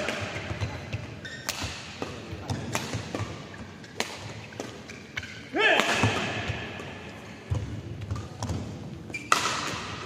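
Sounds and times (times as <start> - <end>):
racket hitting shuttlecock: 0.0 - 10.0
player shouting: 5.5 - 6.0.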